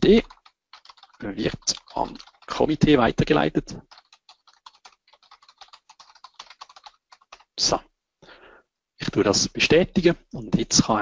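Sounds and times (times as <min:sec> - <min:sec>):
typing on computer keyboard: 0:00.0 - 0:02.9, 0:03.8 - 0:07.6.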